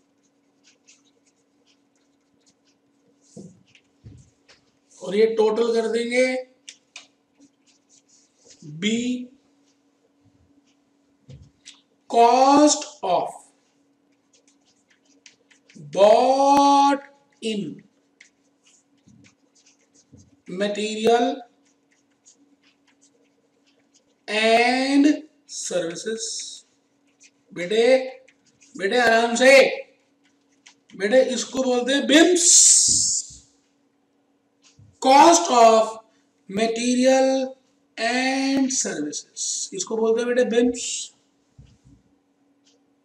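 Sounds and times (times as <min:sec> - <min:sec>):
pen scratching while writing: 0:00.0 - 0:04.4, 0:14.0 - 0:16.8, 0:17.8 - 0:24.7, 0:26.7 - 0:29.4, 0:30.2 - 0:31.6
faint steady hum: 0:00.0 - 0:43.0.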